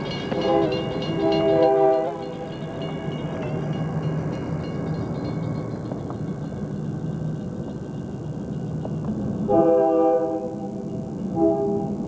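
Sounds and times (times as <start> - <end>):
railroad crossing bell ringing: 0.0 - 9.6
low rumble: 0.0 - 9.8
locomotive air horn blasts: 0.3 - 2.5, 9.5 - 10.7, 11.3 - 12.0.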